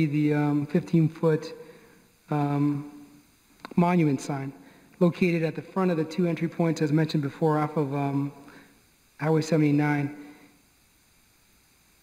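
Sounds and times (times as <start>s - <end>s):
man speaking: 0.0s - 1.7s, 2.3s - 3.0s, 3.6s - 8.5s, 9.2s - 10.3s
light hiss: 0.0s - 12.0s.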